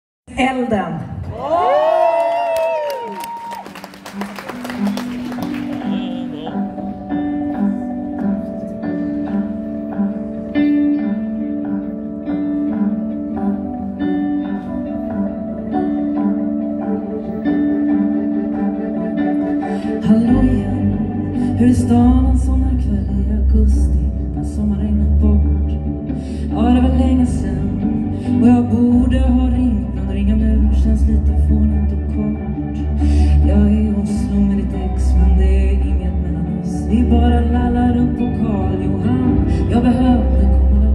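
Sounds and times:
audience clapping: 1.8s - 6.7s
deep low accompaniment: 3.9s - 40.9s
electric guitar single notes: 4.4s - 40.9s
woman singing into microphone: 19.6s - 40.9s.

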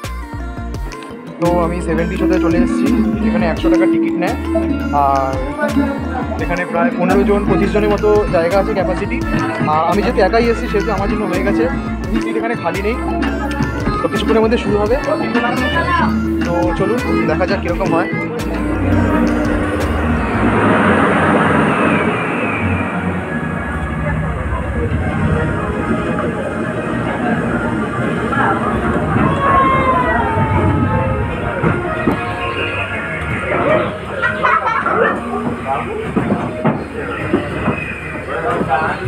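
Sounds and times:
film soundtrack music: 0.6s - 26.9s
rattling ride sound: 1.4s - 39.0s
voices: 1.4s - 39.0s
deep steady rumble: 1.6s - 6.4s, 15.7s - 33.5s.

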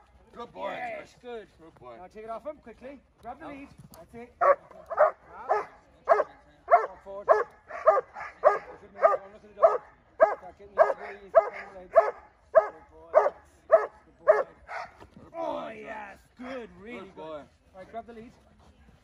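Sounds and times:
dog barking: 4.4s - 15.0s.

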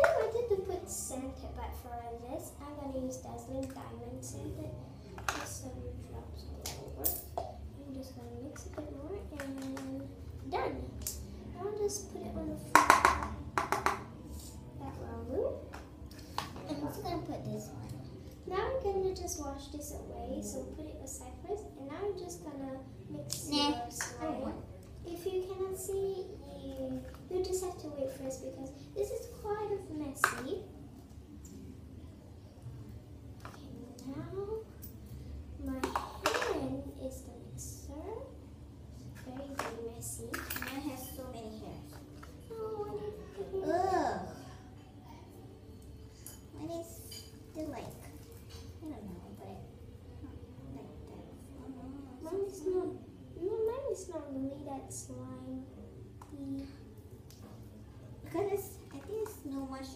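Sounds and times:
girls talking quietly: 0.0s - 30.8s, 39.0s - 59.9s
plastic containers knocking: 12.8s - 14.0s.

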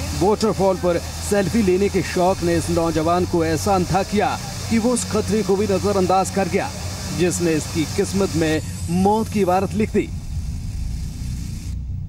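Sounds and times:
deep pulsing drone: 0.0s - 12.0s
faint hiss: 0.0s - 12.0s.

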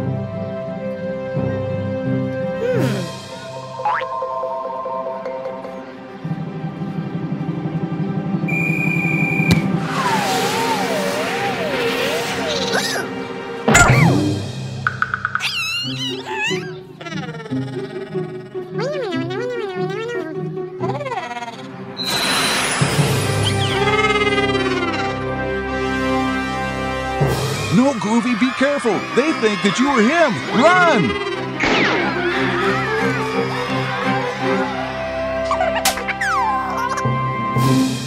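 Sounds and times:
cartoon soundtrack music: 0.0s - 7.3s, 9.6s - 38.0s
sliding whistle-like tone: 8.5s - 12.6s
cartoon crash sound effect: 9.5s - 13.0s, 13.7s - 14.3s, 31.6s - 32.5s.

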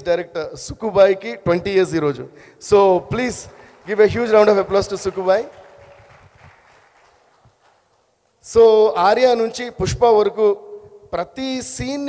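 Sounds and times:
audience clapping: 3.2s - 8.1s.

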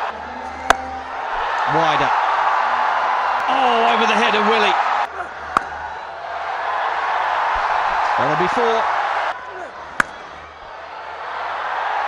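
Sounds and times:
stadium crowd din: 0.0s - 12.0s
cricket bat hitting ball: 0.5s - 1.1s, 5.4s - 5.9s, 9.6s - 10.3s.

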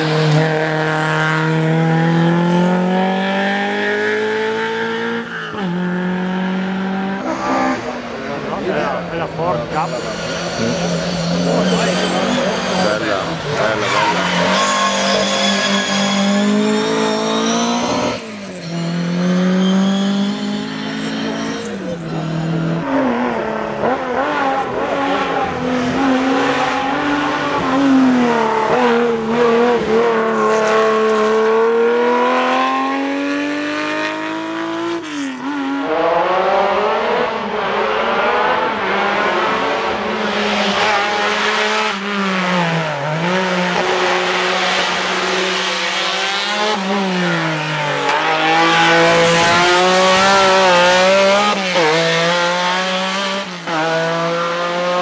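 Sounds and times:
rally car engine revving: 0.0s - 55.0s.

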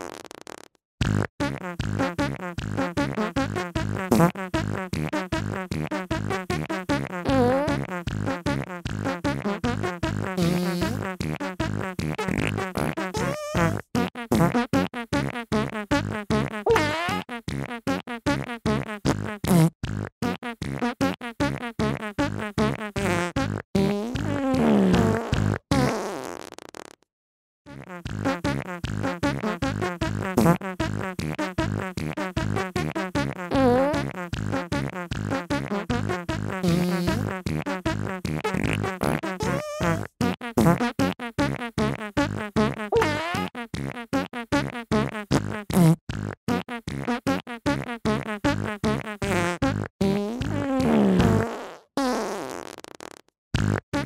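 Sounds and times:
comedy music of fart sounds: 0.0s - 27.1s, 27.7s - 54.0s.

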